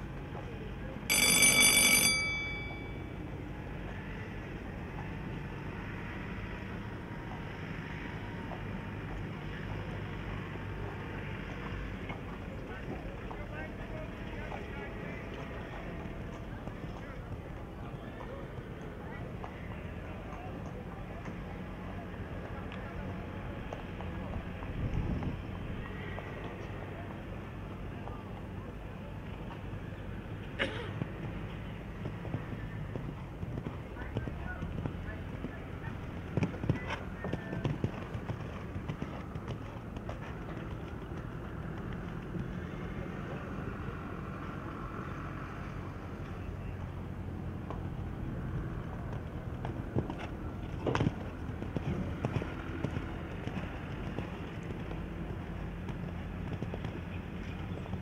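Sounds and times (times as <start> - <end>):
faint voices: 0.0 - 58.0
horse cantering on sand: 0.0 - 58.0
bell ringing: 1.1 - 3.2.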